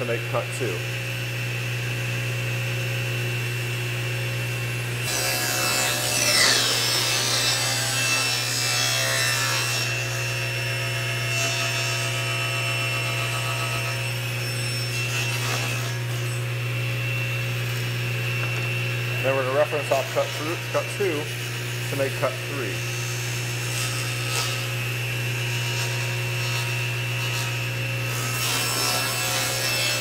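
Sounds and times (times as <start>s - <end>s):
table saw cutting plywood: 3.8s - 30.0s.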